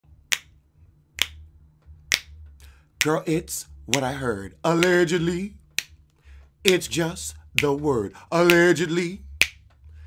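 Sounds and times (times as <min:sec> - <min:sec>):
faint low hum: 0:00.0 - 0:10.0
finger snaps: 0:00.2 - 0:03.2, 0:03.9 - 0:04.2, 0:04.8 - 0:05.1, 0:05.8 - 0:06.9, 0:07.6 - 0:07.8, 0:09.3 - 0:09.8.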